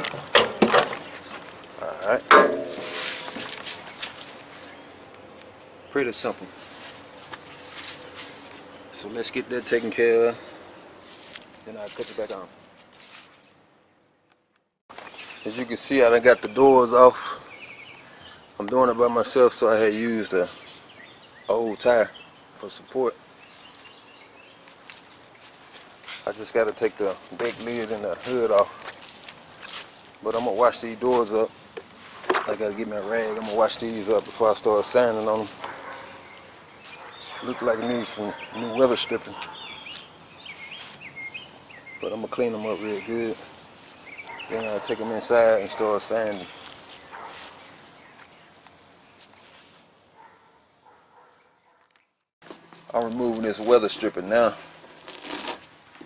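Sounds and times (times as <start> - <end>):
light rustling and handling noise: 0.0 - 8.8, 11.0 - 13.6, 24.6 - 38.0.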